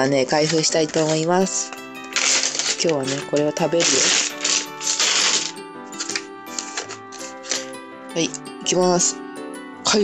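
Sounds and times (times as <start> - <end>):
background music: 0.0 - 10.0
plastic bag rustling: 0.2 - 7.7.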